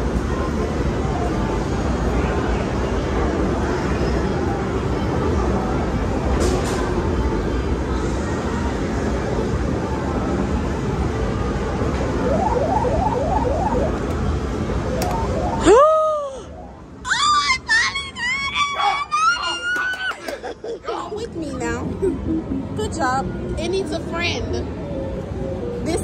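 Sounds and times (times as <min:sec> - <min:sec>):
arcade machine noise: 0:10.8 - 0:17.7, 0:21.3 - 0:25.9
rising electronic beeps: 0:11.9 - 0:17.1, 0:21.9 - 0:23.3.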